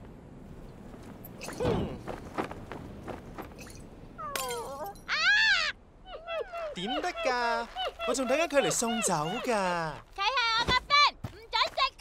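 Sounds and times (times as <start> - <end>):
high-pitched cartoon cries: 4.2 - 9.7.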